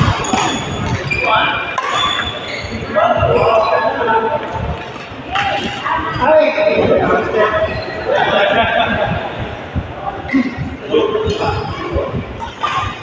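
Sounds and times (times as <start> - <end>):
racket hitting shuttlecock: 0.0 - 1.0, 1.7 - 2.3
shoes squeaking on court: 0.0 - 3.8
players' voices: 0.0 - 13.0.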